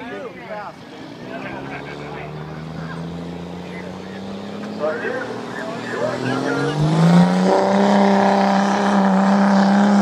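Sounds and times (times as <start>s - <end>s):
pickup truck engine revving: 0.8s - 10.0s.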